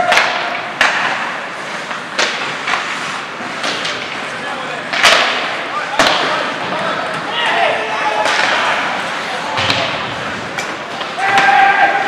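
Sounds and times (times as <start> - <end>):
stick hitting puck: 0.0 - 2.9, 3.6 - 4.2, 4.9 - 6.5, 8.2 - 9.0, 9.6 - 12.0
skate blades scraping ice: 0.0 - 12.0
player shouting: 11.2 - 12.0.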